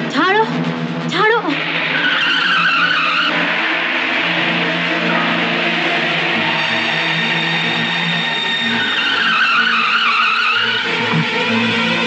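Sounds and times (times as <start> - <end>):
steady low drone: 0.0 - 12.0
high wavering screech: 1.6 - 11.6.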